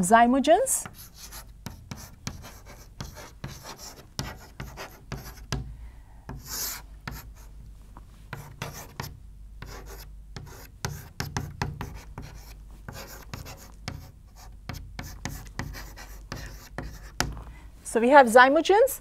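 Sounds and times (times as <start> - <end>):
chalk scratching on chalkboard: 0.8 - 5.6, 6.3 - 7.5, 8.3 - 17.3.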